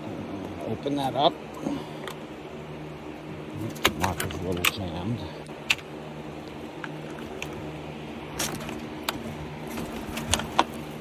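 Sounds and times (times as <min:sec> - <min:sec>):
electric fans humming: 0:00.0 - 0:11.0.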